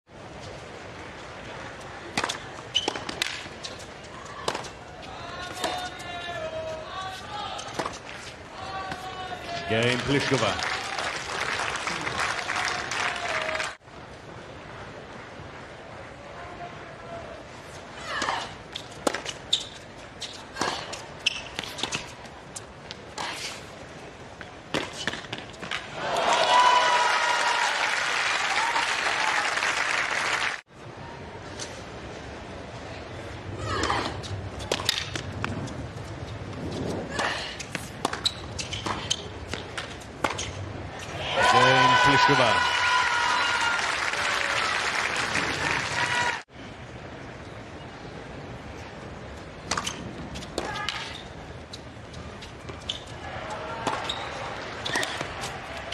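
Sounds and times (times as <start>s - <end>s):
outdoor crowd murmur: 0.1s - 27.7s, 30.1s - 55.9s
crowd applauding and clapping: 9.8s - 13.8s, 26.0s - 30.6s, 41.5s - 46.4s.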